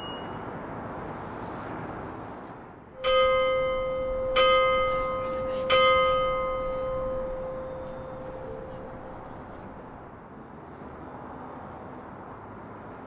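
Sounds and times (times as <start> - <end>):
church bell ringing: 3.0 - 10.0.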